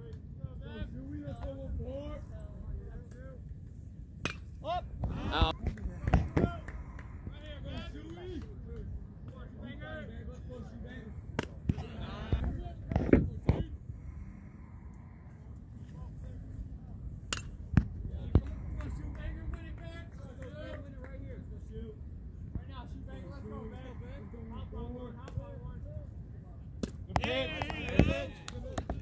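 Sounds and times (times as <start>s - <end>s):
wind rumble on microphone: 4.8s - 26.6s
distant voices calling out: 27.1s - 29.0s.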